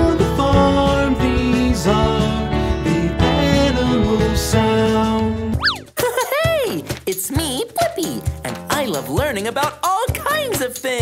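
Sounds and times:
cartoon boing sound effects: 5.6s - 5.9s.

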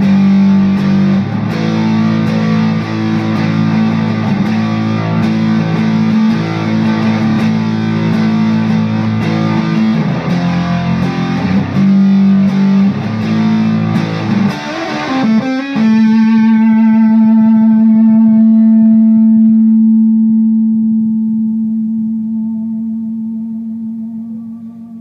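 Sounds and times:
distorted electric guitar: 0.0s - 25.0s.

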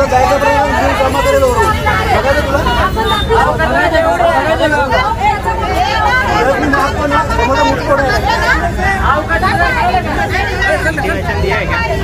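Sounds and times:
people arguing heatedly: 0.0s - 12.0s.

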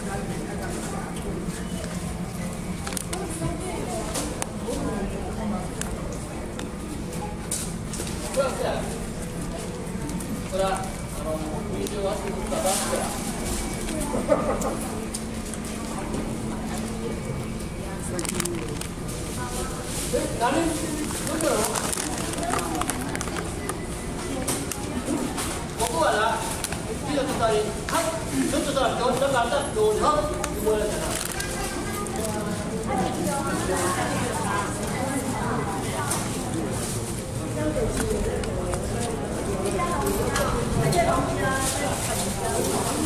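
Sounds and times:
faint indistinct voices: 0.0s - 43.0s
people talking: 0.0s - 43.0s
plastic snack packaging crinkling: 18.1s - 19.0s, 20.6s - 23.8s, 30.9s - 32.4s.

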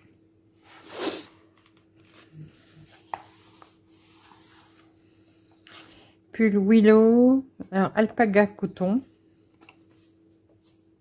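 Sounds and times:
hand rubbing paper pages: 2.0s - 5.0s.

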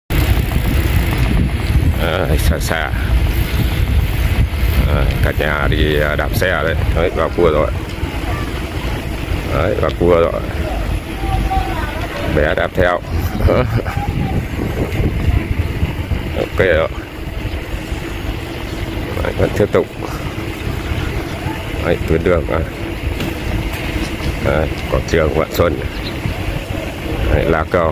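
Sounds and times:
road noise: 0.1s - 27.9s
wind buffeting microphone: 0.1s - 27.9s.

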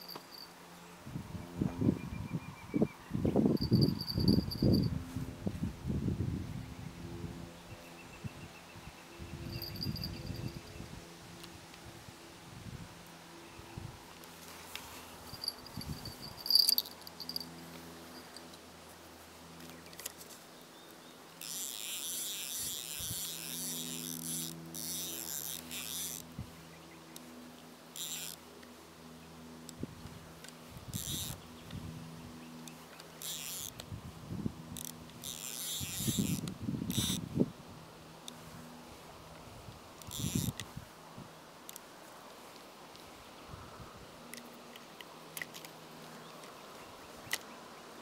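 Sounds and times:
high-pitched insect buzzing: 0.0s - 0.5s, 3.6s - 4.9s, 9.4s - 10.7s, 15.2s - 18.5s, 21.4s - 26.3s, 28.0s - 28.4s, 30.9s - 31.4s, 33.2s - 33.8s, 34.8s - 37.2s, 40.0s - 40.6s.

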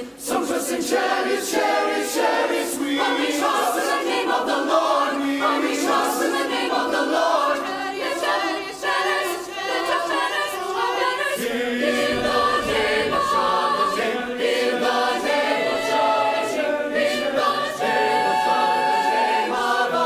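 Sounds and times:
mixed choir singing in harmony: 0.0s - 20.0s.

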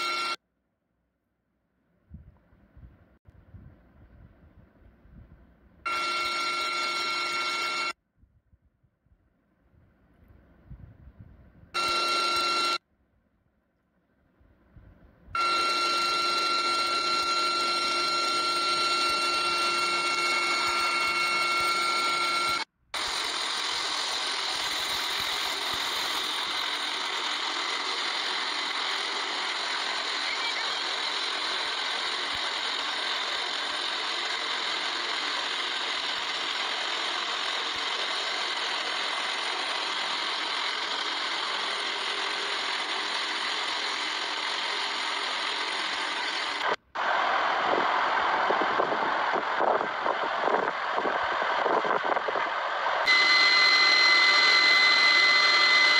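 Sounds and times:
helicopter rotor noise: 5.9s - 7.9s, 11.8s - 12.8s, 15.4s - 55.9s
helicopter turbine whine: 11.8s - 12.8s, 15.4s - 55.9s.

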